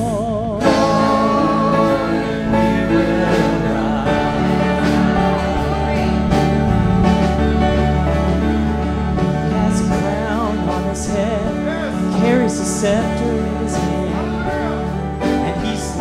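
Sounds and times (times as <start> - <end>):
acoustic guitar and band: 0.0 - 16.0
group of singers: 0.0 - 16.0.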